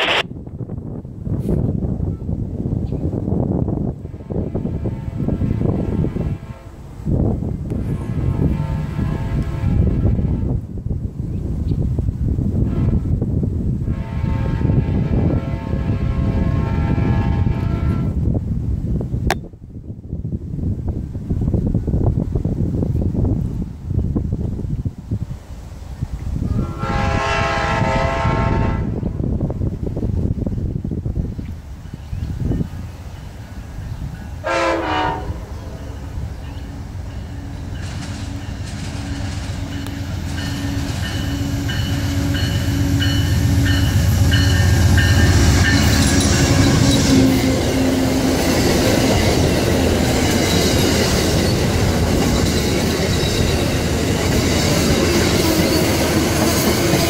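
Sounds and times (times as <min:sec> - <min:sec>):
train horn long blasts: 0:04.0 - 0:06.9, 0:07.7 - 0:10.6, 0:12.5 - 0:18.3, 0:26.4 - 0:29.4, 0:34.4 - 0:36.2, 0:37.1 - 0:50.6.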